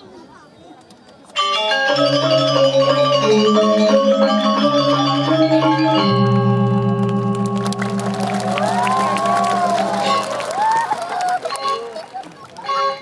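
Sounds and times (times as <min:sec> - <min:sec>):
metallophones ringing notes: 0:01.4 - 0:12.0.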